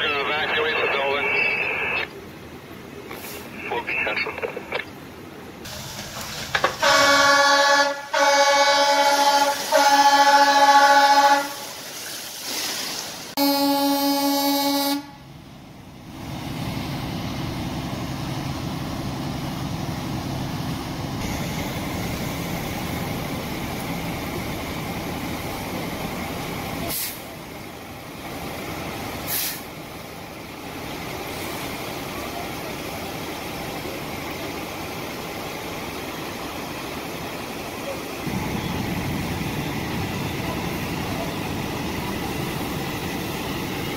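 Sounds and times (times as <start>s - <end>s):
engine rumble: 0.0s - 8.2s, 15.0s - 43.9s
fire truck air horn blasts: 6.7s - 11.8s, 13.4s - 15.3s.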